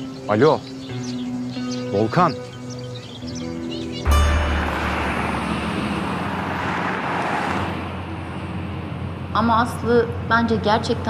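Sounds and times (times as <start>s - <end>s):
car and lorry driving by: 2.6s - 11.0s.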